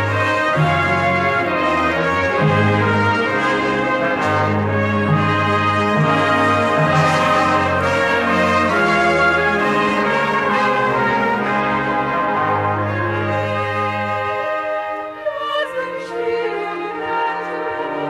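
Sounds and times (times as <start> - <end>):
brass chords: 0.0 - 18.0
orchestra playing opera music: 0.0 - 18.0.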